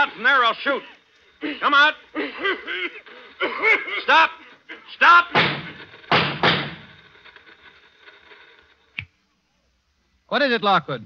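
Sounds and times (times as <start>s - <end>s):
gunshot ringing tail: 5.3s - 7.0s
sharp gunshot crack: 5.3s - 7.0s.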